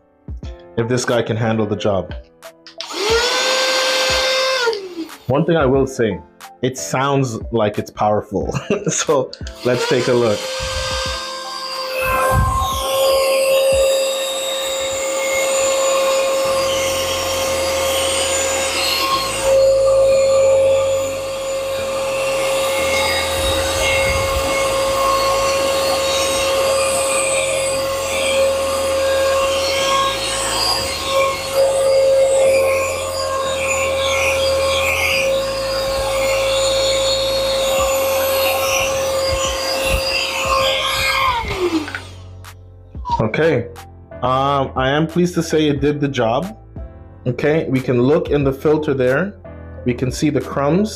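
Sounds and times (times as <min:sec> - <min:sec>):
background music: 0:00.0 - 0:50.9
handheld vacuum motor whine: 0:02.7 - 0:05.3, 0:09.4 - 0:43.2.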